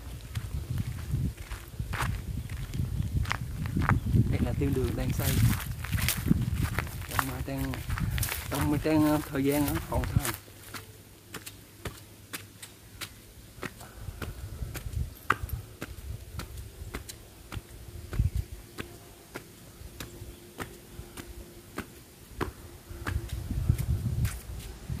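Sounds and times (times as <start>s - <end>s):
low rumbles: 0.0s - 10.4s
footsteps on stone and tile: 0.0s - 24.8s.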